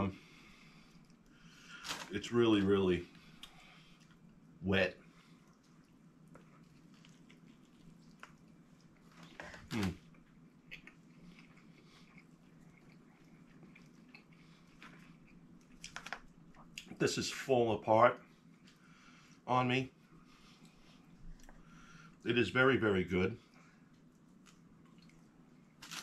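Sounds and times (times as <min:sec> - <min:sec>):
wet chewing sounds: 0:03.2 - 0:17.0, 0:23.4 - 0:26.0.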